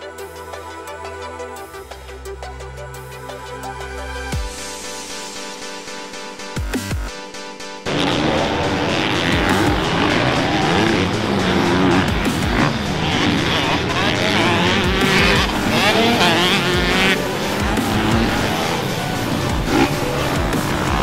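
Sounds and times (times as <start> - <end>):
dirt bike engines revving: 7.8 - 21.0.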